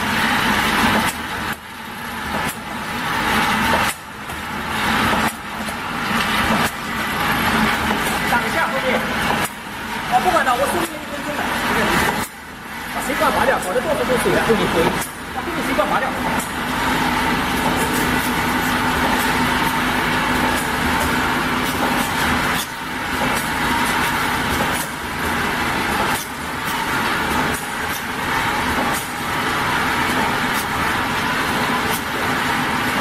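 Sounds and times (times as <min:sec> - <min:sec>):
machine mechanical hum: 0:00.0 - 0:33.0.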